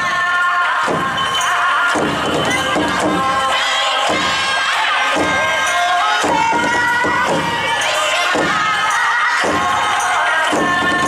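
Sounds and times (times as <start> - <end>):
festival music: 0.0 - 11.0.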